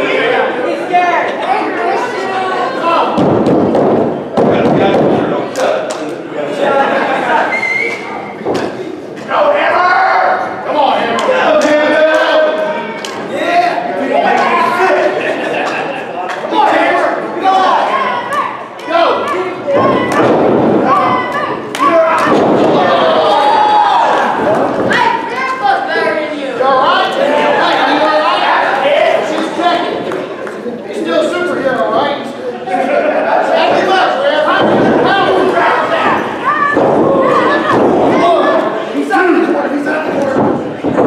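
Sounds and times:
crowd voices: 0.0s - 41.0s
thumps and bangs on wrestling ring: 3.2s - 5.4s, 19.8s - 21.3s, 22.2s - 23.2s, 34.6s - 38.6s, 40.1s - 41.0s
people shouting: 16.5s - 26.0s, 33.6s - 41.0s.

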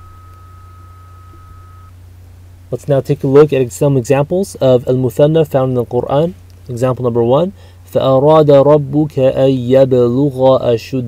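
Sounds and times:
faint high-pitched whine: 0.0s - 11.0s
steady low hum: 0.0s - 11.0s.

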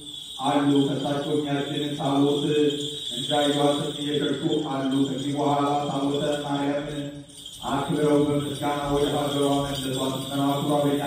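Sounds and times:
man chanting liturgy: 0.0s - 11.0s.

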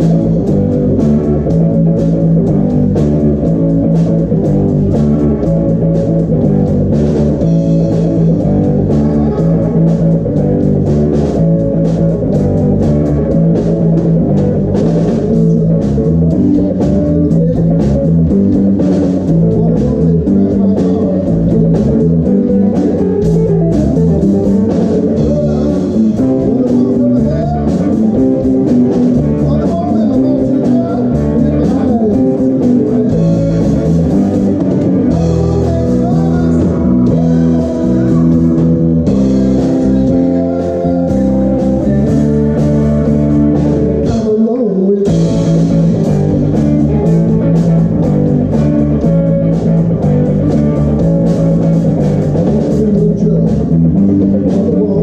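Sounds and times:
bass guitar: 0.0s - 55.0s
drum kit: 0.0s - 55.0s
electric guitar: 0.0s - 55.0s
keyboard: 0.0s - 55.0s.

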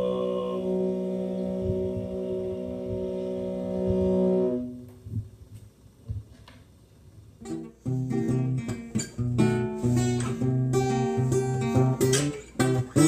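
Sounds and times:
throat singing drone: 0.0s - 4.9s.

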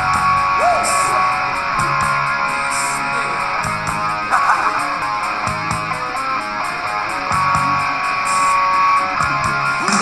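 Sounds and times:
bass guitar: 0.0s - 10.0s
distorted electric guitar: 0.0s - 10.0s
drum beat: 9.3s - 10.0s.

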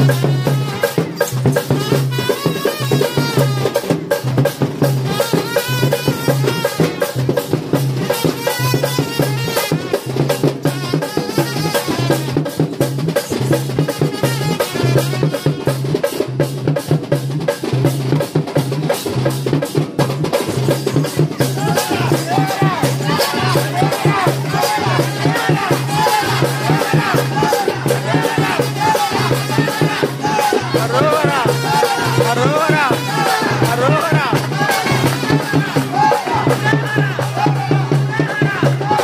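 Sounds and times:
loud music with fast drumming: 0.0s - 39.0s
low beat: 20.8s - 39.0s.

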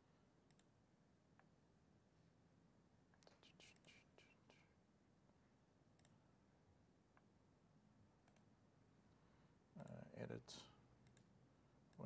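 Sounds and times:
faint clicks: 0.5s - 0.7s, 6.0s - 6.2s, 8.2s - 8.5s, 11.0s - 11.3s.

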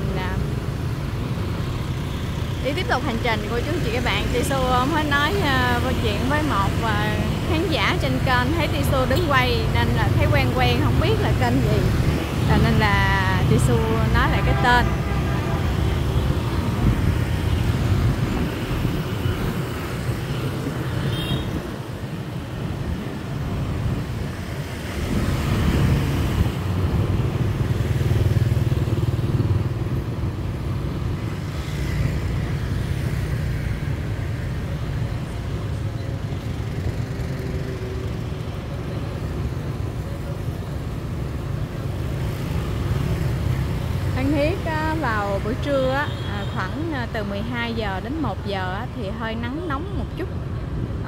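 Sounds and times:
motorbike and scooter traffic: 0.0s - 51.0s.

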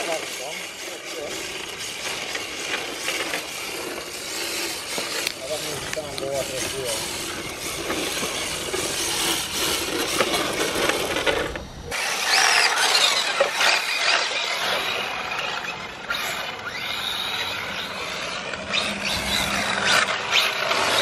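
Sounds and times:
rc car motor whining: 0.0s - 21.0s
tyres on wet tarmac: 0.0s - 21.0s.

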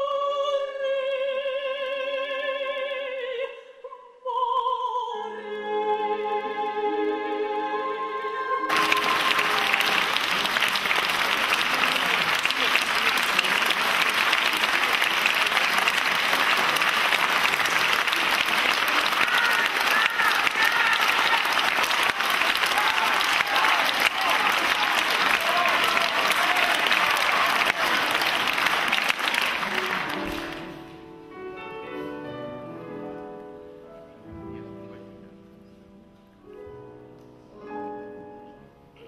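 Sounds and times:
audience applauding: 8.7s - 30.9s.

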